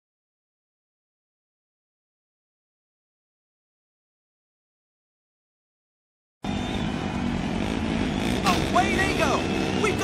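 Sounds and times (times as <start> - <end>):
motorcycle engines running loud: 6.4 - 10.0.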